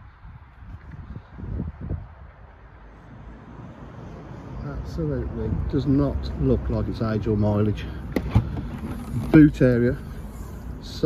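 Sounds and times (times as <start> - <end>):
wind on microphone: 0.0 - 2.8.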